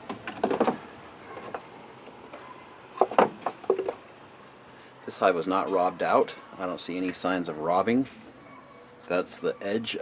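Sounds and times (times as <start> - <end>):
wooden frame knocking and scraping: 0.1 - 0.8.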